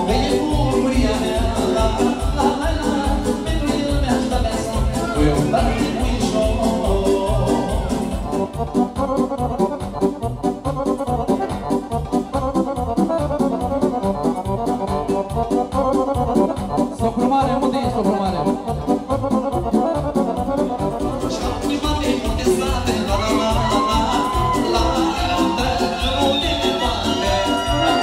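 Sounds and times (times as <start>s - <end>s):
accordion: 0.0s - 28.0s
electronic keyboard: 0.0s - 28.0s.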